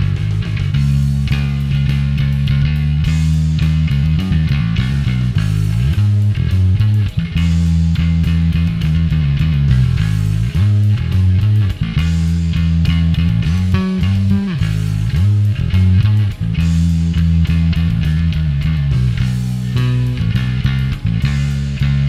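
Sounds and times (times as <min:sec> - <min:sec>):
distorted electric bass riff: 0:00.0 - 0:22.0.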